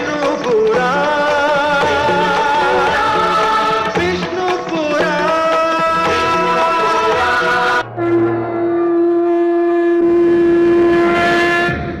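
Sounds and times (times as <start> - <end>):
music: 0.0 - 12.0
long horn note: 7.8 - 12.0.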